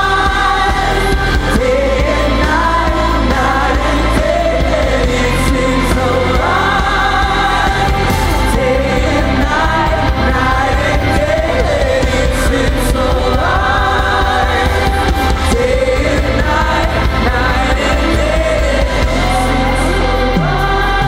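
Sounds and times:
bass line: 0.0 - 21.0
live worship band: 0.0 - 21.0
singers holding sliding notes: 0.0 - 21.0.

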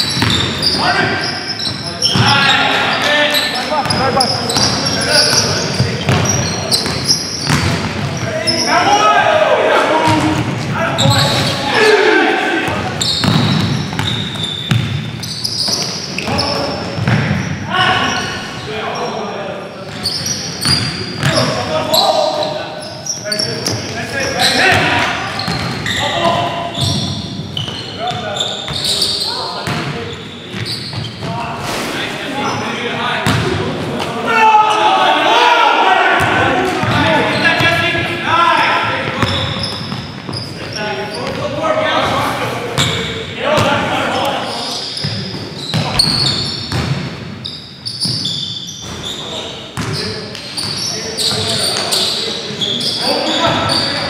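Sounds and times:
sneaker squeaks on court floor: 0.0 - 9.0, 10.1 - 11.8, 12.7 - 19.2, 19.8 - 31.8, 36.2 - 37.8, 39.0 - 41.5, 42.8 - 43.7, 44.4 - 54.0
basketball bouncing on wood floor: 4.6 - 8.3, 12.7 - 15.0, 45.7 - 47.1
players shouting: 8.2 - 14.6, 23.4 - 27.0, 34.0 - 39.7.

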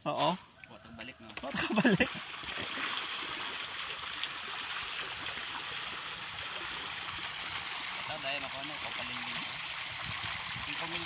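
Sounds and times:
fish splashing water: 2.0 - 8.1.

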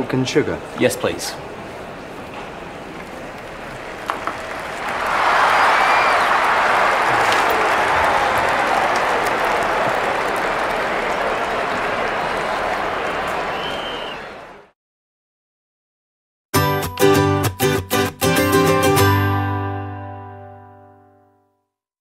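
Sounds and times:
crowd cheering and clapping: 2.9 - 14.7.

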